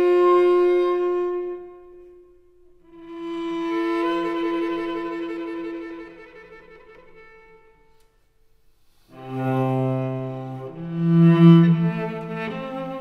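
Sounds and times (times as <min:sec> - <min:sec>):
bowed cello: 0:00.0 - 0:08.0, 0:09.0 - 0:13.0.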